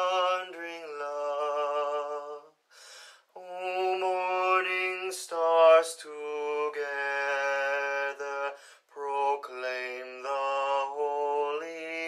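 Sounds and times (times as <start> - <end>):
man singing a hymn: 0.0 - 2.6, 3.3 - 12.0.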